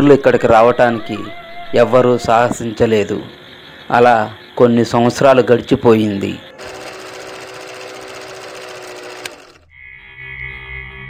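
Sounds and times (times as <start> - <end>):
fast mechanical rattle: 6.6 - 9.6.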